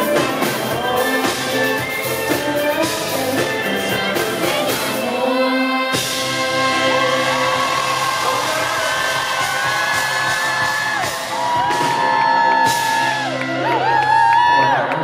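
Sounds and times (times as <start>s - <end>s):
man singing: 0.0s - 9.8s
live band music: 0.0s - 14.8s
audience whooping and singing along: 0.0s - 15.0s.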